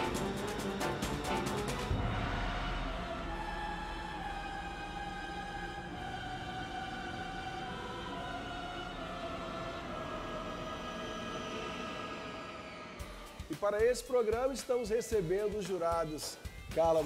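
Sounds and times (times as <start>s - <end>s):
fast percussive beat: 0.0s - 2.4s, 13.0s - 17.0s.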